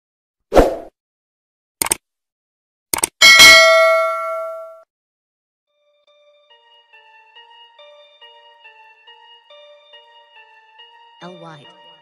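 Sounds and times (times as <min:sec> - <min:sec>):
quick clicks: 0:01.8 - 0:02.0, 0:02.9 - 0:03.2
metallic bell-like ding: 0:03.2 - 0:04.8.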